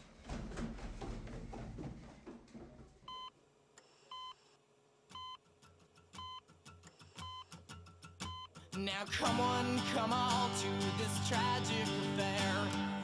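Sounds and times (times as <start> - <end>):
heart monitor beeping: 3.1 - 3.3, 5.1 - 5.4, 7.2 - 7.6, 8.2 - 8.6
music: 8.7 - 13.0.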